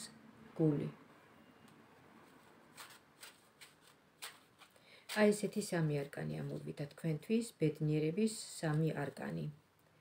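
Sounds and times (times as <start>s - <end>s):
deck of cards rustling: 2.2s - 5.8s.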